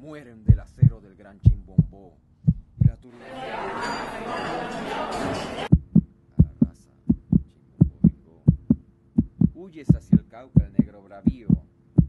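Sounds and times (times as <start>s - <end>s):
faint steady hum: 0.0s - 3.1s
heartbeat thumps: 0.5s - 3.0s, 5.7s - 12.0s.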